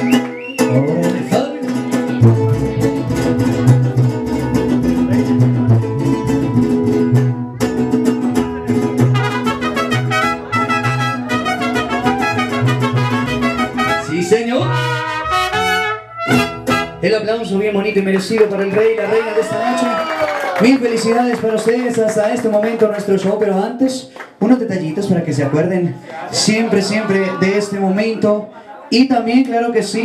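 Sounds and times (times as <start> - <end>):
guitar strumming: 0.0 - 17.3
plucked bass notes: 0.0 - 17.9
higher plucked note run: 2.1 - 17.1.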